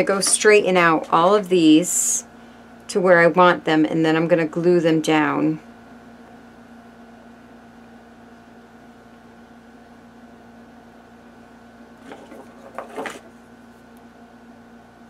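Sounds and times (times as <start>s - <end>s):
steady background hum: 0.0s - 15.0s
cards scraping: 12.0s - 13.3s
playing cards sliding on a board: 12.0s - 13.3s.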